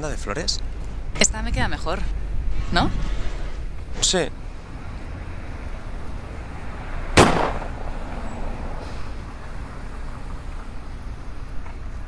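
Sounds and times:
low outdoor rumble: 0:00.0 - 0:12.0
sharp crack: 0:07.1 - 0:08.0.

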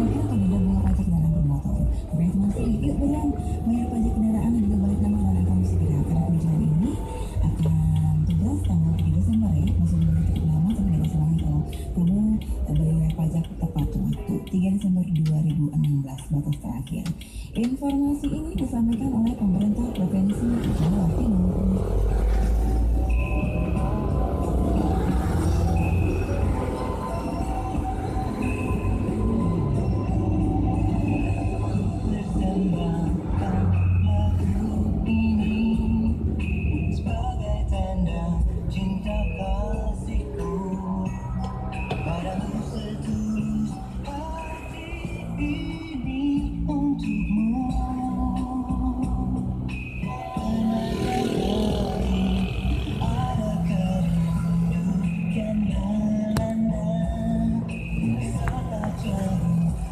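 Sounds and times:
car radio music: 0:00.0 - 0:59.9
engine and road noise: 0:00.0 - 0:59.9.

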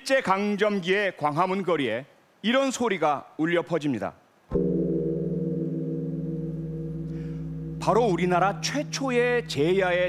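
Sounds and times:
large temple bell ringing: 0:04.6 - 0:10.0.

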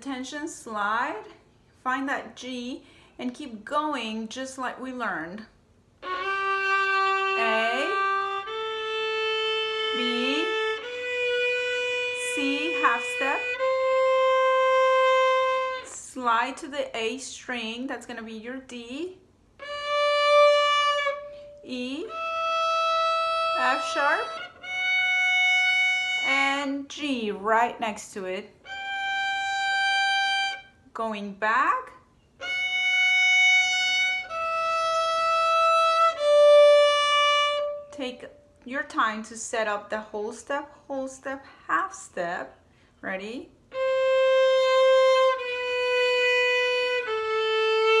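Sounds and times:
violin bowing a long note: 0:06.0 - 0:16.0, 0:19.6 - 0:26.3, 0:28.6 - 0:30.7, 0:32.4 - 0:38.0, 0:43.7 - 0:48.0.

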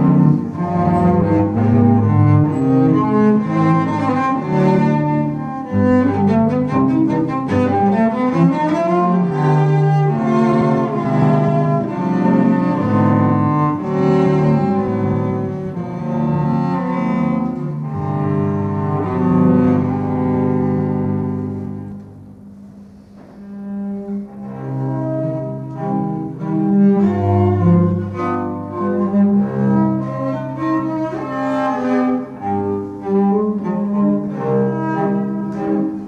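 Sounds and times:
cellos playing a duet: 0:00.0 - 0:36.0.

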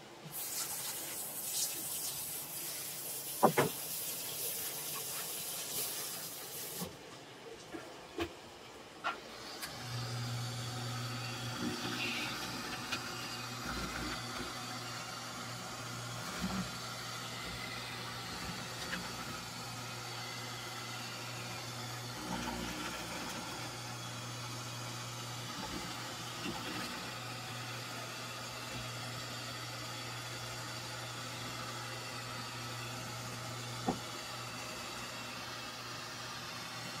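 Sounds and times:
machine humming and hissing: 0:08.6 - 0:37.0.

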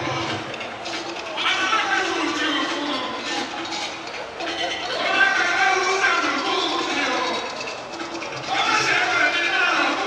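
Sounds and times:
crowd chatter: 0:00.0 - 0:10.0
men talking and greeting: 0:00.0 - 0:10.0.

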